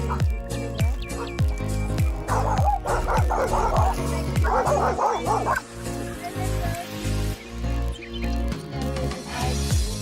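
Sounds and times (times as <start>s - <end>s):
small dogs barking: 0.0s - 0.3s, 0.9s - 1.5s, 2.2s - 6.4s
background music: 0.0s - 10.0s.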